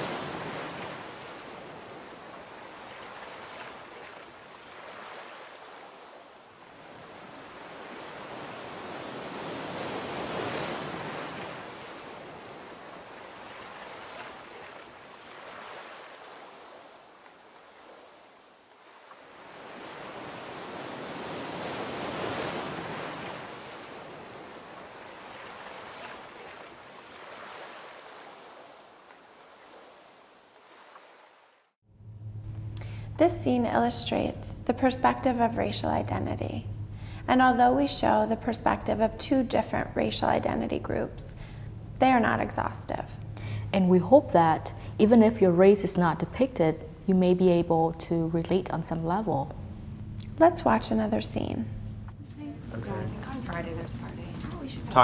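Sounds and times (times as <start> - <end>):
ocean waves washing in: 0.0 - 45.9.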